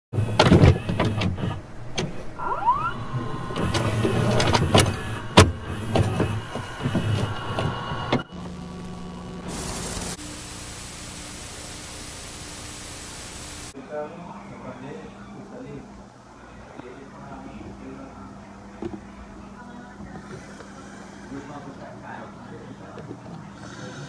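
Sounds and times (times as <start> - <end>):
mechanical clicks and clunks: 0.2 - 8.6
motor whirring: 0.2 - 13.8
tape hum and hiss: 0.2 - 20.2.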